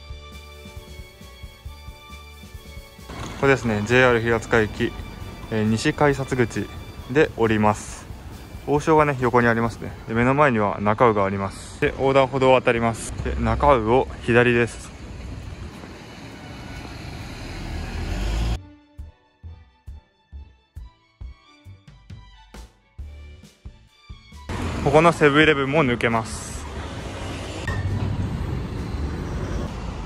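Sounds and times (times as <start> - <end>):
street traffic: 0.3 - 18.6, 24.5 - 30.0
motor scooter: 3.1 - 5.4.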